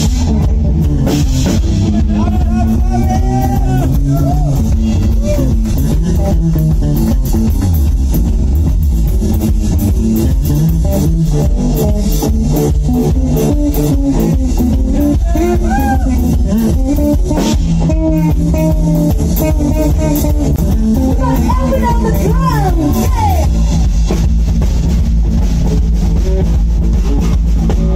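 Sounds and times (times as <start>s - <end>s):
bass line: 0.0s - 27.9s
drum kit beat: 0.0s - 27.9s
electric guitar lead notes: 0.0s - 27.9s.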